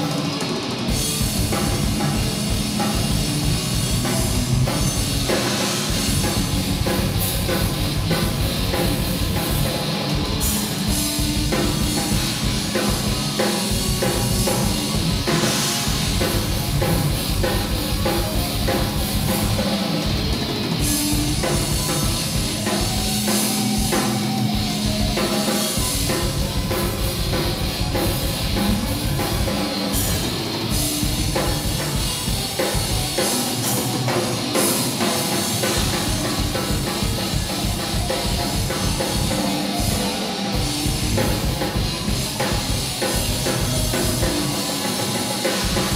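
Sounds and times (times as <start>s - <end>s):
busy drum kit: 0.0s - 45.9s
live rock band playing: 0.0s - 45.9s
loud electric guitars: 0.0s - 45.9s.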